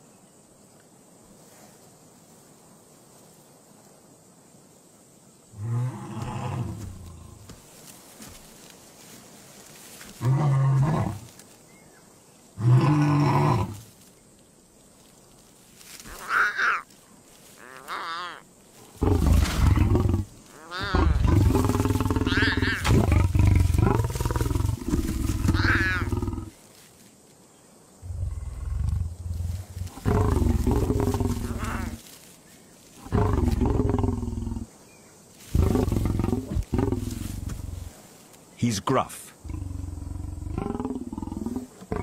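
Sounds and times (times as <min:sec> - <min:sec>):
lion growling: 0:05.6 - 0:07.5, 0:10.2 - 0:11.3, 0:18.9 - 0:26.6, 0:28.0 - 0:32.0, 0:33.0 - 0:34.7, 0:35.5 - 0:37.9, 0:39.4 - 0:42.0
lion cubs mewing: 0:16.0 - 0:16.9, 0:17.6 - 0:26.6, 0:28.0 - 0:32.0, 0:33.0 - 0:34.7, 0:35.5 - 0:37.9, 0:39.4 - 0:42.0.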